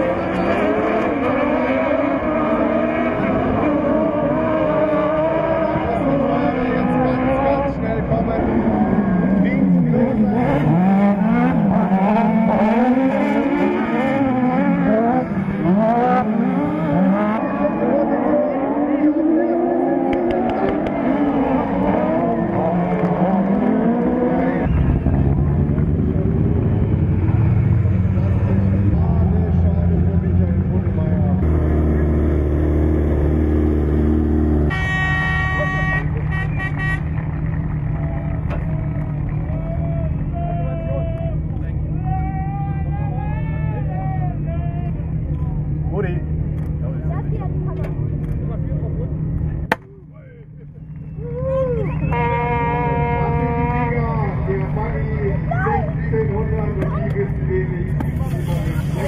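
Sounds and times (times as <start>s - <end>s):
buggy engines revving: 0.0s - 59.0s
horn blasts and toots: 34.4s - 37.5s, 51.8s - 56.9s.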